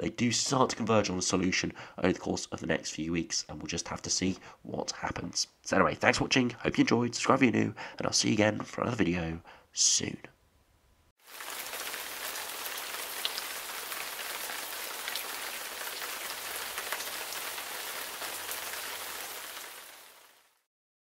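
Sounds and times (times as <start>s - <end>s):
steady rain falling: 11.2s - 20.7s.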